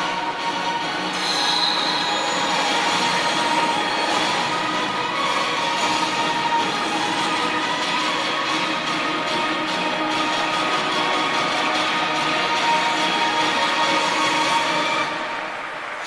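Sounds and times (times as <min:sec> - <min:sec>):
music over stadium loudspeakers: 0:00.0 - 0:16.0.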